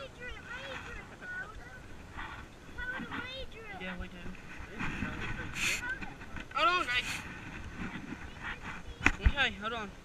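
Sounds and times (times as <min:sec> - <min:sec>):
wind noise on microphone: 0:00.0 - 0:09.5.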